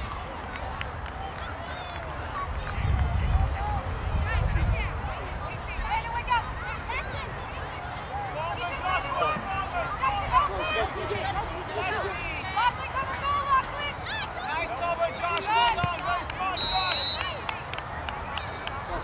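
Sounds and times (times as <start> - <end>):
spectators calling out and cheering: 0.0 - 19.0.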